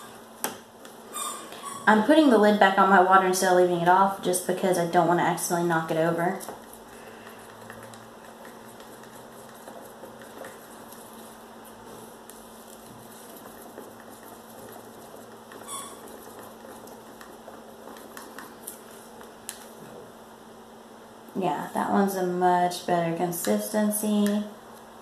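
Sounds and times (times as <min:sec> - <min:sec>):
stick scraping in plastic cup: 0:06.4 - 0:18.9.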